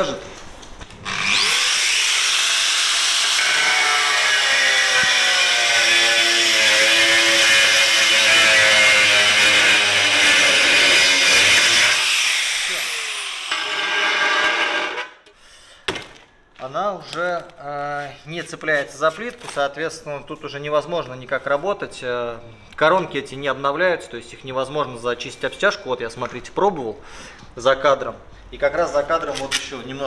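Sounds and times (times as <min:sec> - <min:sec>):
angle grinder whining: 0:01.0 - 0:15.2
bit grinding on tile: 0:01.2 - 0:15.2.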